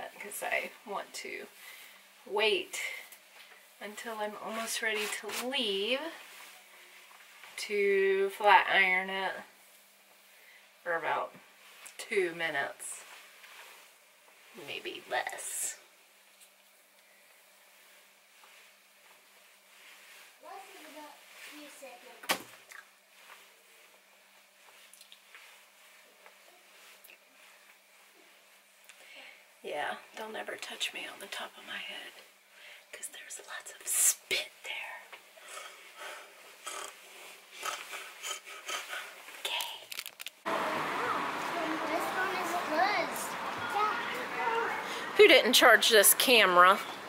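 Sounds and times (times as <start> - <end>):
hands rustling through hair: 16.2 - 22.2
person speaking: 37.6 - 47.0
street ambience with voices: 40.5 - 47.0.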